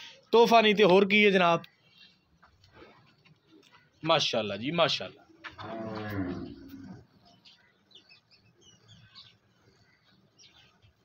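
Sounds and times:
cow mooing: 0:05.6 - 0:07.0.

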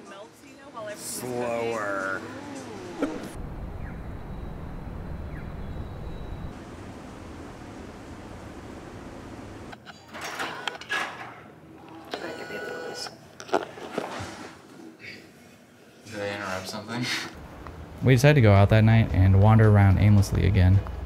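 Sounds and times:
city street traffic rumble: 0:00.7 - 0:09.8, 0:17.4 - 0:21.0
bursts of voices: 0:00.8 - 0:03.0.

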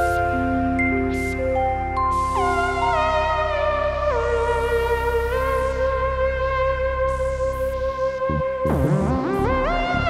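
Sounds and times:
low bass drone: 0:00.0 - 0:10.0.

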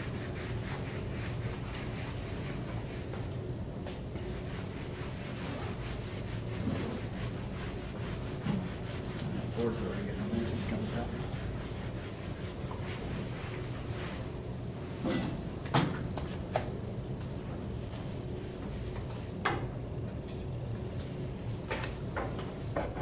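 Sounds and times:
eraser rubbing on whiteboard: 0:00.0 - 0:03.2, 0:04.2 - 0:14.2
steady low hum: 0:00.0 - 0:23.0.

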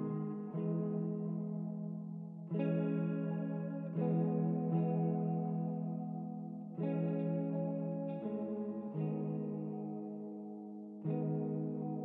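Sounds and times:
ambient electric guitar chords: 0:00.0 - 0:12.0.

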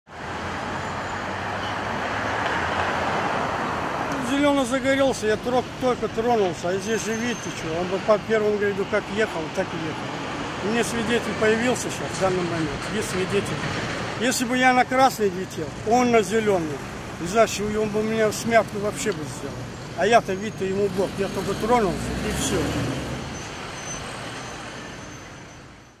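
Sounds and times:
road traffic hiss: 0:00.1 - 0:26.0.

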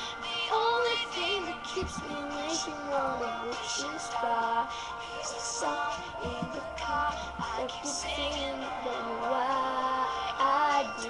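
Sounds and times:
backing track: 0:00.0 - 0:11.0
girl singing pop ballad: 0:00.0 - 0:11.0.

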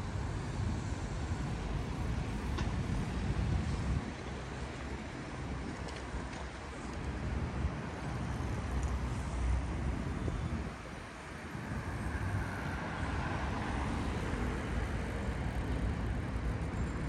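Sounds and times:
city road traffic: 0:00.0 - 0:17.0.

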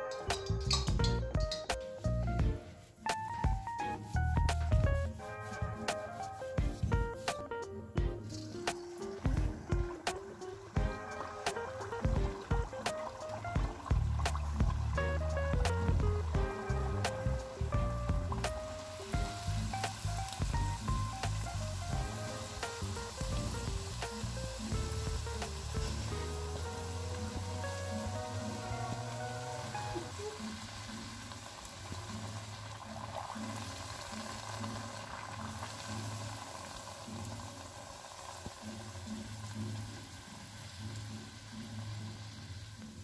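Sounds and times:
low repeating beat: 0:00.0 - 0:06.0, 0:06.6 - 0:29.2
background music melody: 0:00.0 - 0:43.0
hot oil sizzling: 0:00.0 - 0:43.0.

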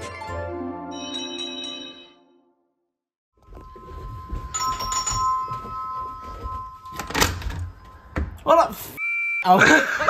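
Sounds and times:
electronic doorbell chime: 0:00.9 - 0:02.4, 0:03.5 - 0:08.2.

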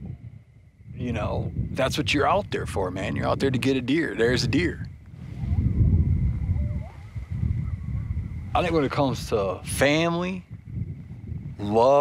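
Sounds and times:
wind buffeting microphone: 0:00.0 - 0:12.0
faint whistled glides: 0:04.6 - 0:09.6.

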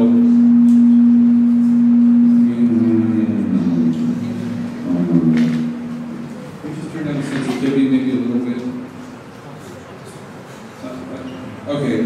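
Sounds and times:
microphone feedback howl: 0:00.0 - 0:07.4
voices: 0:00.0 - 0:12.0.

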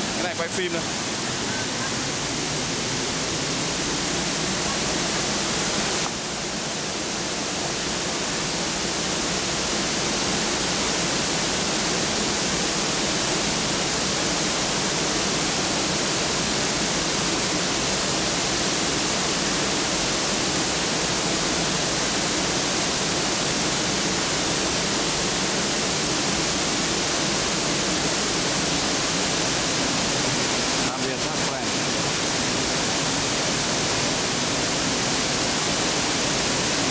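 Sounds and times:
waterfall rushing: 0:00.0 - 0:36.9.

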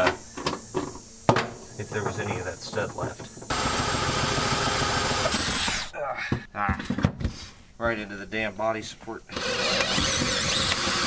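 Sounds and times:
electric drill boring through steel: 0:03.5 - 0:05.9, 0:09.3 - 0:11.0
person muttering: 0:05.2 - 0:06.9.

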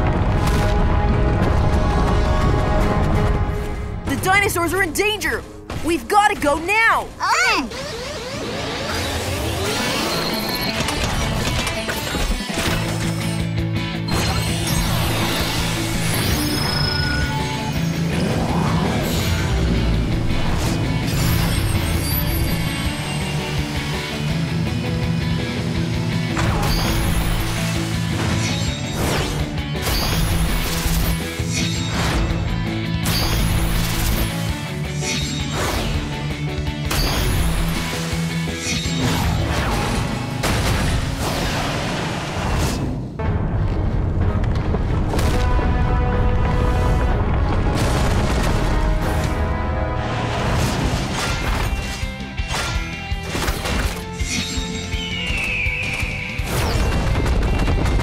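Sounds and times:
driving background music: 0:00.0 - 0:58.0
mechanical clanks and crashes: 0:10.0 - 0:13.5.

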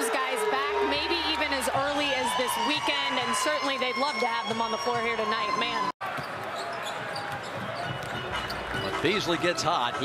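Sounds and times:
basketball dribbling: 0:04.2 - 0:09.0.

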